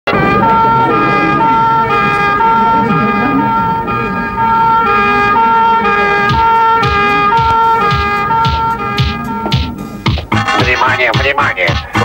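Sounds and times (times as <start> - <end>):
two-tone siren: 0.1 - 10.0
pop song: 10.2 - 12.0.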